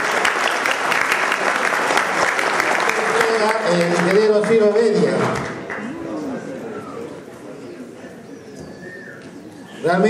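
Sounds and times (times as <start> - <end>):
murmur of voices: 1.2 - 10.0.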